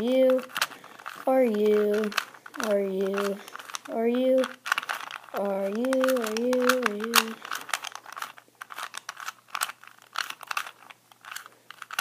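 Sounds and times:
plastic puzzle cube clicking: 0.0 - 12.0.

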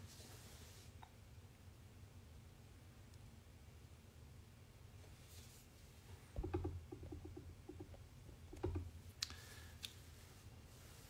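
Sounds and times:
soft handling thumps: 6.3 - 9.0.

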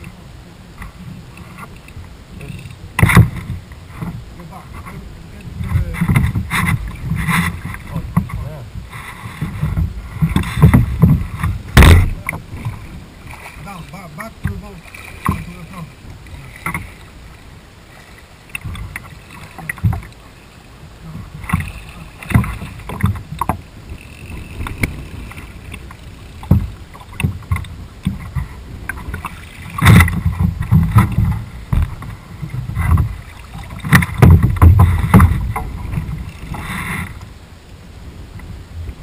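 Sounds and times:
wind rumble on microphone: 0.0 - 39.0
knocks and thumps on boat hull: 3.0 - 4.2, 5.6 - 12.8, 14.3 - 15.6, 18.6 - 20.1, 21.1 - 23.6, 26.4 - 36.6.

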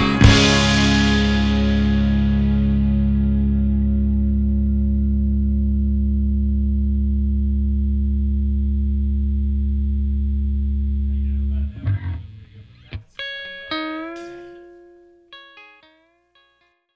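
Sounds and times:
rock band held chord: 0.0 - 5.3, 11.1 - 14.9
plucked guitar notes bending: 0.0 - 6.4, 10.9 - 16.6.

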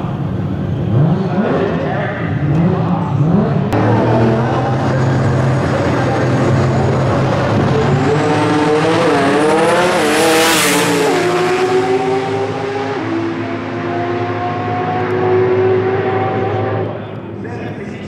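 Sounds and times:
drag racing cars rumbling: 0.0 - 18.0
engines revving with wavering pitch: 0.1 - 17.4
race cars launching loudly: 0.2 - 17.5.

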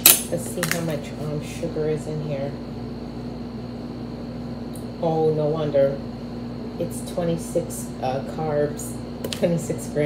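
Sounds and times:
ceiling fan humming: 0.0 - 10.0.

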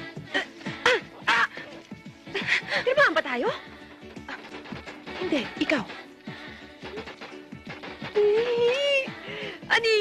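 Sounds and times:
film music with repeating beat: 0.0 - 10.0.

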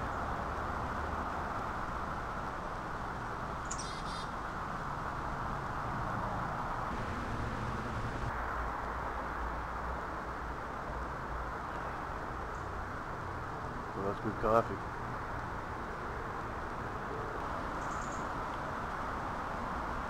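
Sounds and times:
distant traffic rumble: 0.0 - 20.0
bird chirp: 3.6 - 4.3, 17.8 - 18.3.

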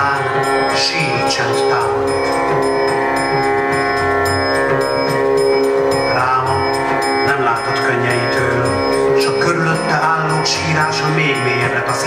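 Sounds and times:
violin: 0.0 - 12.0.

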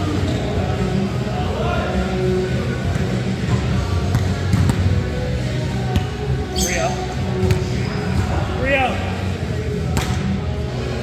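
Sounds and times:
sneaker squeak: 0.2 - 0.6, 6.5 - 8.0.

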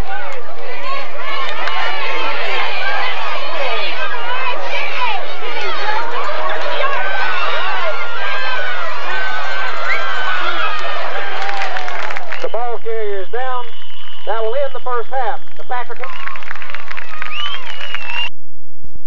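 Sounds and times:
football crowd cheering: 0.0 - 18.3
voices calling short phrases: 12.4 - 16.3.

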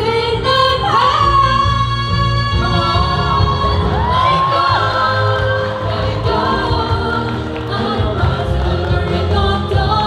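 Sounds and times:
backing track with bass: 0.0 - 10.0
pop ballad singing through pa: 0.0 - 10.0.

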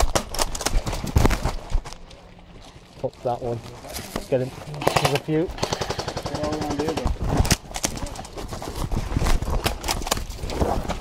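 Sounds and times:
airsoft gun firing full-auto bursts: 4.8 - 7.1.

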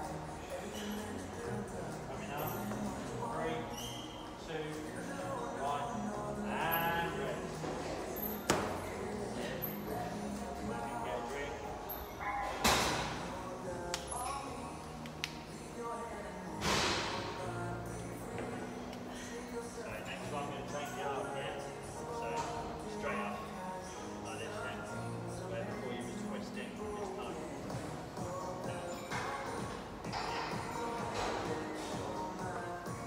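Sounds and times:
music with singing over speakers: 0.0 - 33.0.

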